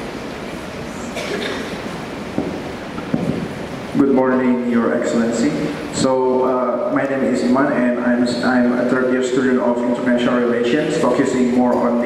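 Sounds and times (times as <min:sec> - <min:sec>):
man speaking: 0:04.0 - 0:12.0.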